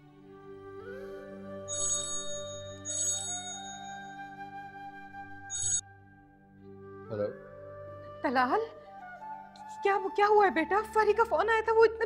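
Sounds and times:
soft background music: 0.0s - 12.0s
phone ringtone: 1.7s - 4.2s, 5.5s - 5.8s.

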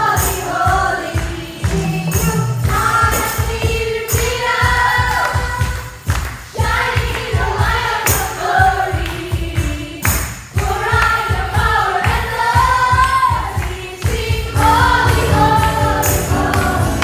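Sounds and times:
women singing: 0.0s - 17.0s
worship band playing: 0.0s - 17.0s.

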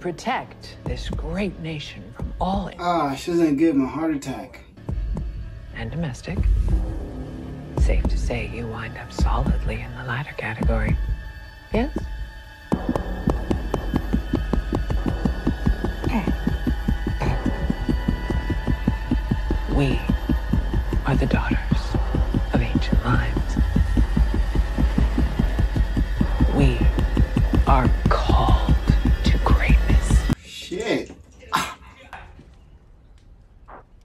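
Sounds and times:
deep steady hum: 4.8s - 30.4s
rapid heartbeat pounding: 4.9s - 5.7s, 6.4s - 30.4s
strained vocal sounds: 7.9s - 30.4s.

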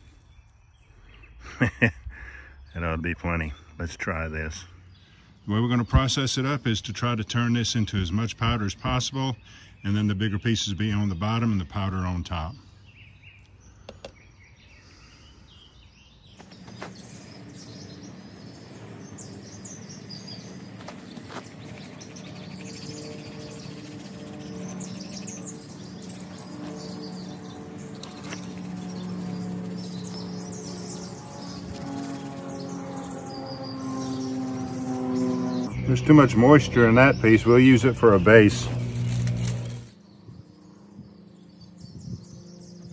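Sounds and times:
small birds chirping: 0.0s - 42.9s
low drone of held tones: 16.5s - 42.9s.

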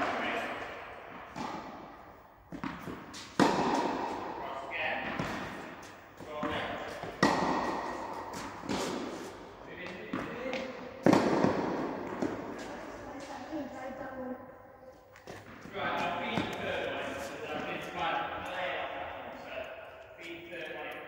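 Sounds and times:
tennis racket hitting ball: 0.0s - 4.4s, 5.0s - 13.3s
ball bouncing: 2.5s - 4.3s, 5.0s - 9.1s, 9.8s - 13.4s, 15.1s - 16.9s.

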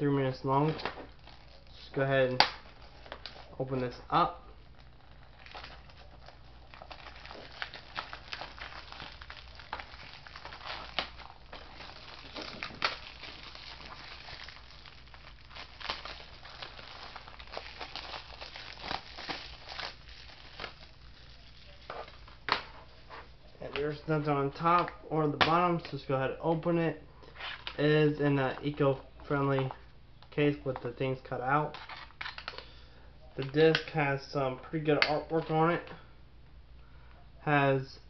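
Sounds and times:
plastic wrap crinkling: 0.5s - 25.0s, 31.7s - 32.8s.

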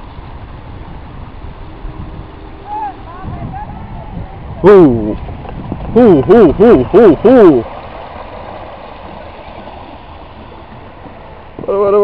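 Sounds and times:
water rushing in stream: 0.0s - 12.0s.

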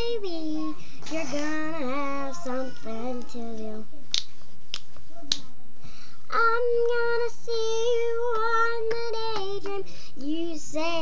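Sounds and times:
person singing: 0.0s - 3.9s
finger snaps: 4.1s - 5.5s.

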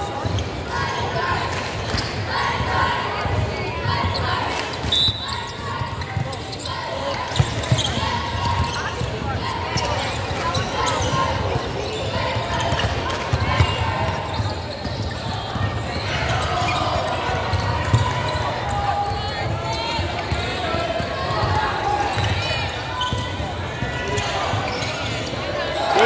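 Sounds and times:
echoing hubbub of voices: 0.0s - 26.0s.

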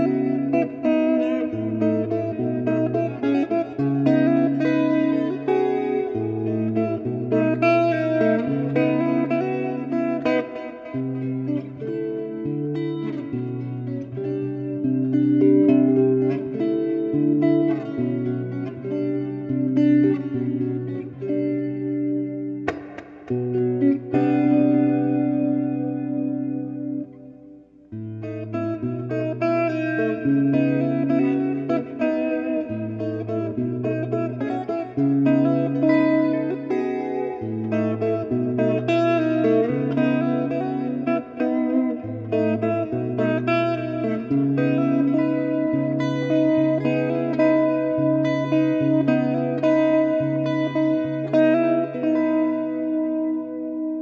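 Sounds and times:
electric guitar playing chords: 0.0s - 54.0s.

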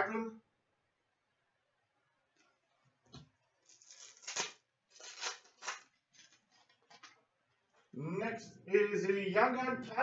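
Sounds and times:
foil wrapper crinkling: 3.6s - 7.2s.

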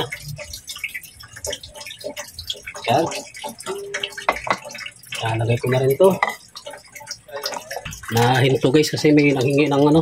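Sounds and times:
fish knocking against metal pot: 0.0s - 8.4s.

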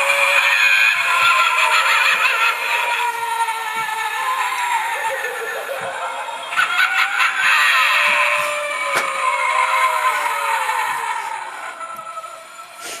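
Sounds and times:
spooky wavering tones: 0.0s - 13.0s
hiss: 12.7s - 13.0s.

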